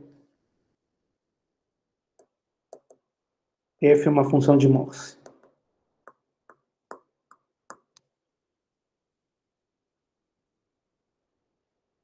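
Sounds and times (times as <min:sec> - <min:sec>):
stylus tapping on tablet screen: 0:02.2 - 0:03.1, 0:05.2 - 0:08.1.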